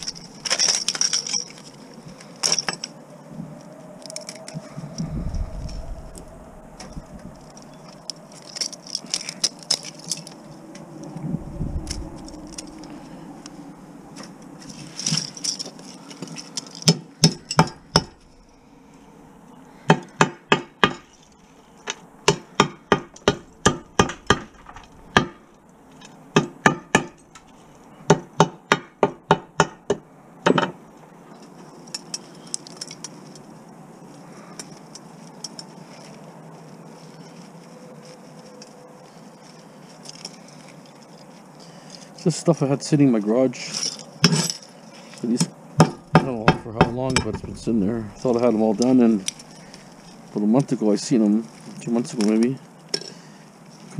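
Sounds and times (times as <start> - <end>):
ferrite pieces clinking: 0.0 - 3.0
hammer striking ferrite core: 16.8 - 18.2, 19.9 - 21.1, 22.3 - 25.4, 26.4 - 27.2, 28.1 - 30.8, 45.8 - 47.8.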